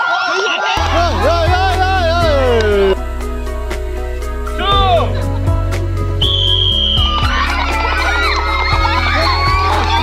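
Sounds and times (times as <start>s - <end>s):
background music with steady beat: 0.8s - 10.0s
whistle blast: 6.2s - 7.1s
excited shouting: 7.0s - 10.0s.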